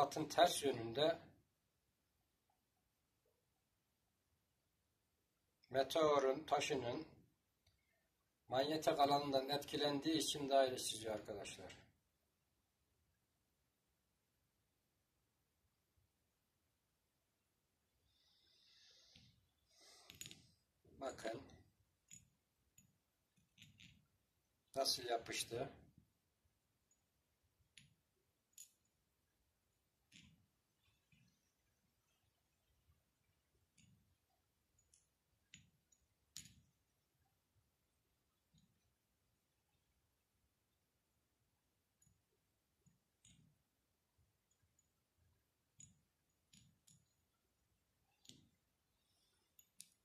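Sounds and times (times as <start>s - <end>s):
magnet clicking on stone: 22.0s - 24.2s, 27.7s - 29.0s, 30.0s - 32.6s, 34.7s - 36.9s, 42.0s - 43.6s, 45.7s - 48.6s, 49.2s - 50.0s.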